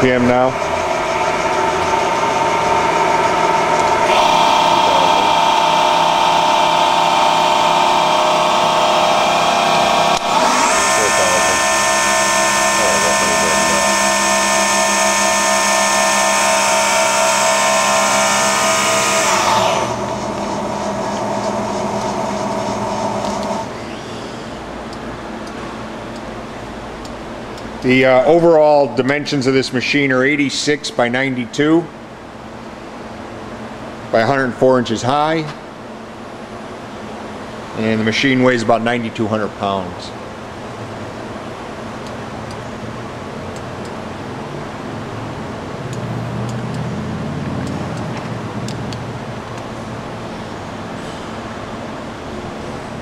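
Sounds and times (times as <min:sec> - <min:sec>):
machine spindle whine: 0:00.0 - 0:30.7.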